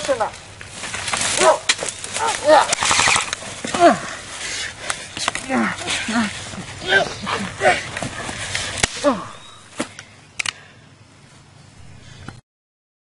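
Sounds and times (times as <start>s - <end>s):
rustling of brush and grass: 0.0s - 12.4s
person crying out and grunting: 2.2s - 2.8s, 3.7s - 4.2s, 5.4s - 7.9s, 8.9s - 9.5s.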